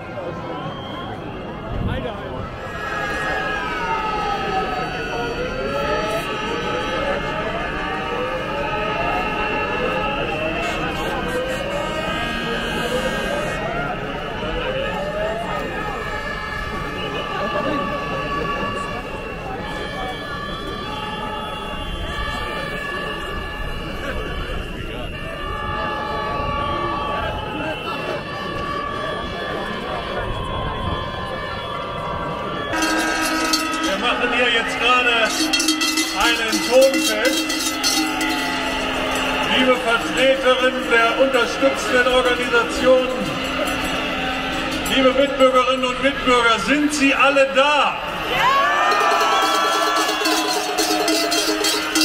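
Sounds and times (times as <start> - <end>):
crowd shouting and cheering: 0.0 - 52.0
horns blowing long notes: 0.0 - 52.0.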